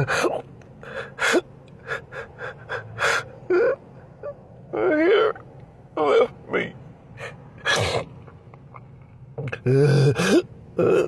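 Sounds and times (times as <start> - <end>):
man crying: 0.0 - 5.4.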